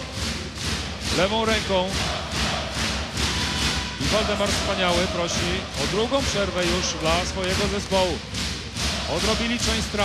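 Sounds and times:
crowd clapping and chanting: 0.0 - 10.0.

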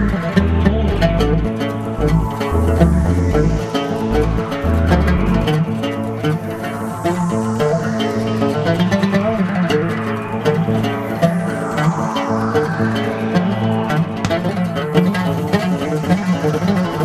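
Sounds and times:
low drone: 0.0 - 17.0
oud plucked with plectrum: 0.0 - 17.0.

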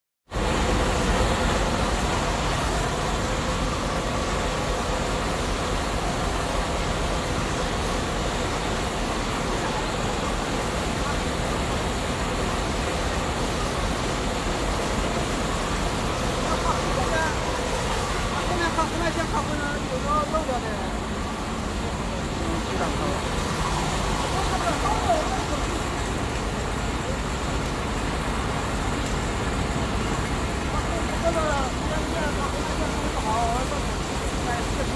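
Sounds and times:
machinery running: 0.4 - 34.9.

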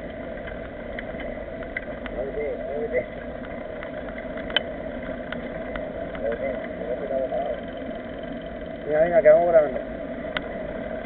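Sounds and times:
bike clicks and rattles: 0.0 - 11.0
bike tyres rolling on asphalt: 0.0 - 11.0.

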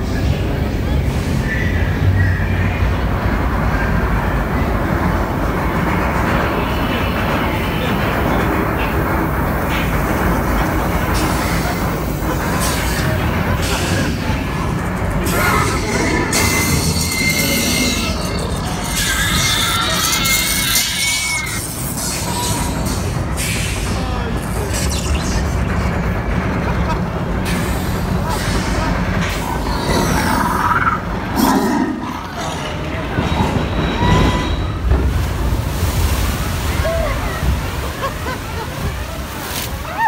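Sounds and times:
indistinct voices: 0.0 - 40.0
machinery low rumble: 0.0 - 40.0
thin high squeal: 16.4 - 22.8.

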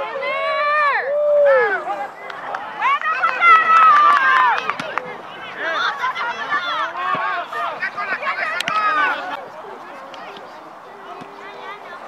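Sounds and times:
overlapping voices: 1.4 - 12.0.

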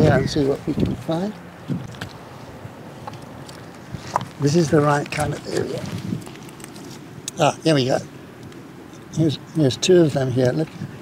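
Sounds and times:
wind: 0.0 - 11.0.

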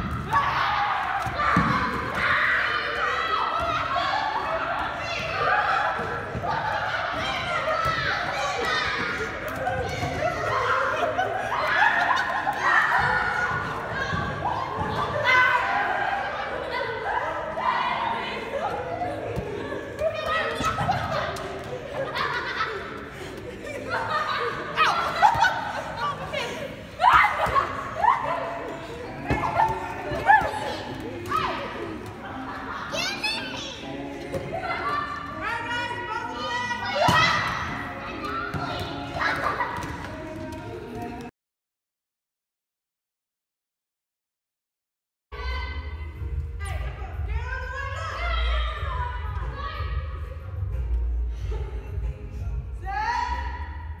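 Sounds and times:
children and adults shouting: 0.0 - 22.7, 23.8 - 39.8.

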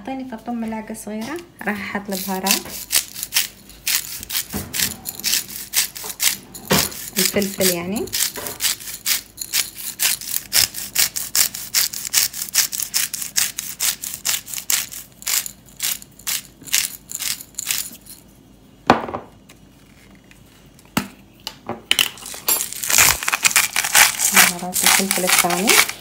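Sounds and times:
pepper grinder clicking: 2.1 - 18.0, 22.5 - 26.0.

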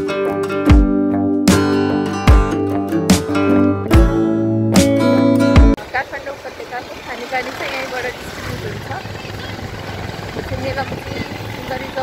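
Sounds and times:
strummed acoustic guitar: 0.0 - 5.8
low traffic rumble: 5.7 - 12.0
people talking: 5.8 - 12.0.

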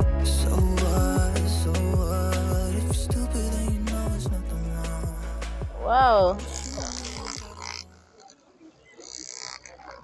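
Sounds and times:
electric massager buzzing: 6.5 - 8.2.

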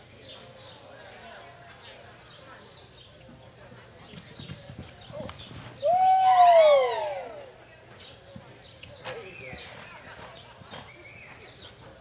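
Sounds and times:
horse hoofbeats on soft dirt: 2.6 - 5.8, 7.9 - 12.0.

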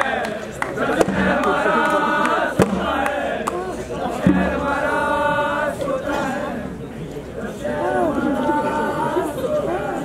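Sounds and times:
long steady vocal call: 0.0 - 10.0
voices talking and calling out: 0.0 - 10.0.

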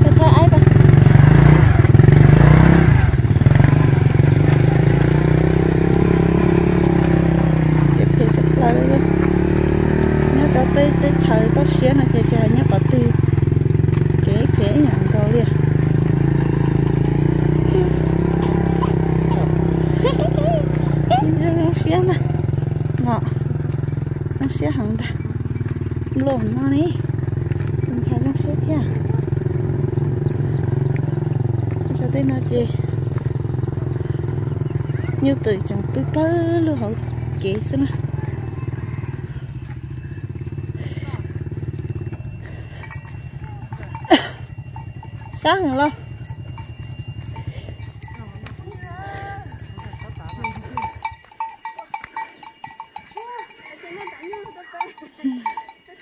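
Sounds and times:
motorcycle engine idling: 0.0 - 56.0
voices: 0.0 - 56.0.

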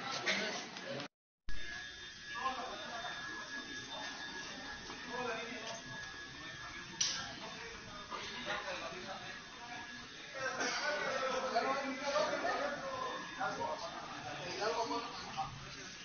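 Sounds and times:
people murmuring: 2.6 - 16.0.

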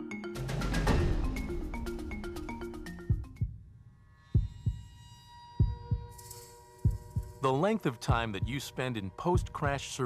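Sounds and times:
low heartbeat-like thumps: 0.8 - 3.7, 4.4 - 4.9, 5.6 - 6.2, 6.8 - 7.4, 8.1 - 8.6, 9.4 - 9.8.

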